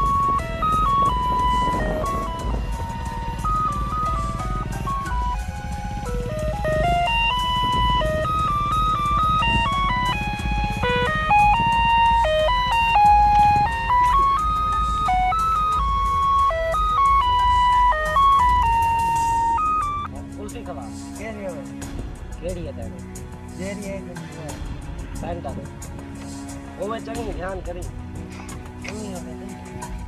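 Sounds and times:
electronic ice cream jingle: 0:00.0 - 0:20.1.

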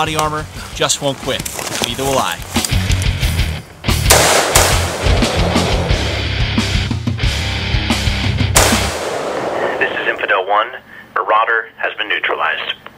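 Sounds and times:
loud music: 0:03.2 - 0:09.7
rapid rifle gunfire: 0:04.1 - 0:05.9, 0:08.6 - 0:10.2.

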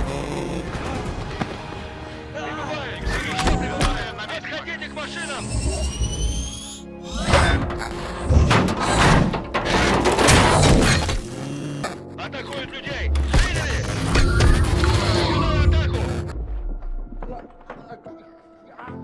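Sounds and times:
dramatic music: 0:00.0 - 0:19.0
heavy crashes and shattering impacts: 0:08.4 - 0:11.2.

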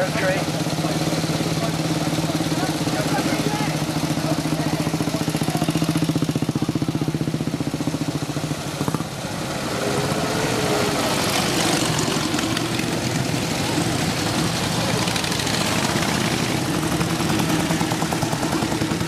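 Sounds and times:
motorcycle engine idling: 0:00.0 - 0:09.6, 0:10.4 - 0:19.0
several motorcycle engines riding: 0:00.0 - 0:19.0.

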